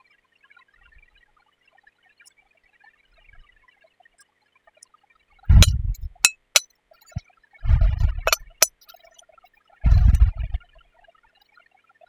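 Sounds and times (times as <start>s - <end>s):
spoon clinking on glass bowl: 5.6s - 6.6s, 8.3s - 8.7s.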